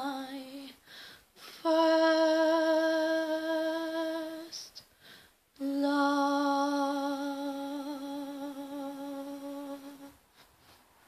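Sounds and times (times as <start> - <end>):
short breath: 0.8 - 1.6, 4.9 - 5.4.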